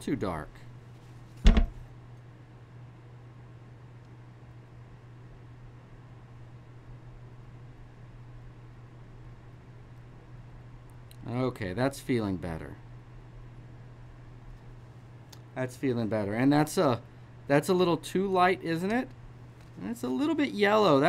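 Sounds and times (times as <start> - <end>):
steady low hum: 0.0 - 21.0
sharp knock: 1.4 - 1.8.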